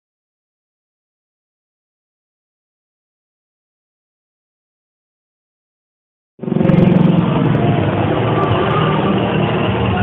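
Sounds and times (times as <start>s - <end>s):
helicopter rotor and turbine: 6.4s - 10.0s.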